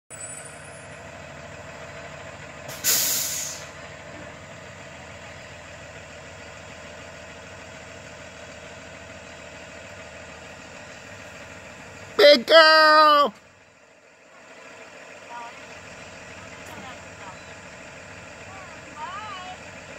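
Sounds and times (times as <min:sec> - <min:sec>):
bus engine idling: 0:00.1 - 0:19.9
air brakes hissing: 0:02.7 - 0:03.8.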